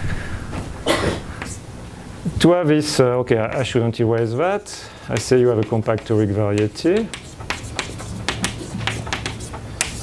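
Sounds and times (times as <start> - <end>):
chalk tapping on blackboard: 3.5 - 4.4, 5.1 - 10.0.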